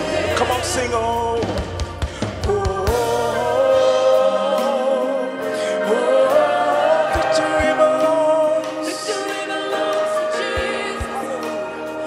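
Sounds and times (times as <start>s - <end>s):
man singing into microphone: 0.0s - 1.7s, 2.3s - 12.0s
backing voices singing: 0.0s - 12.0s
band playing: 0.0s - 12.0s.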